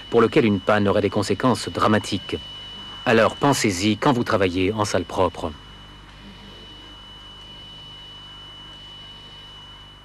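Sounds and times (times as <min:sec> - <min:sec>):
high-pitched whine: 0:00.0 - 0:10.0
steady low hum: 0:00.0 - 0:10.0.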